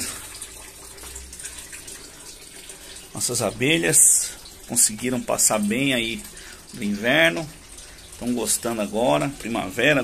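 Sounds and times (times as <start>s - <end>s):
water splashing from pipe: 0.0s - 10.0s.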